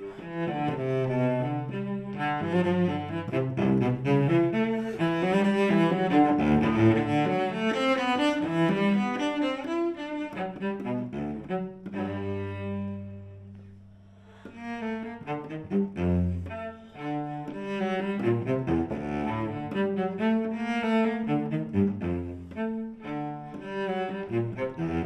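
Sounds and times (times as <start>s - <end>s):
bowed cello: 0.0s - 25.0s.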